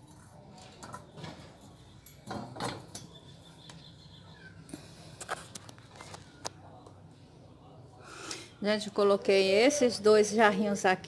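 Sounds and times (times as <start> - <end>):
objects knocking and clicking: 2.2 - 3.2.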